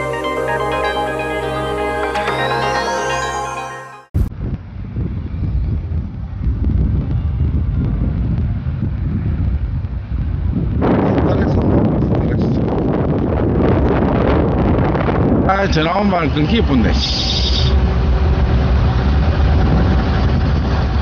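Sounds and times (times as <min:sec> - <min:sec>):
wind buffeting microphone: 0:04.2 - 0:21.0.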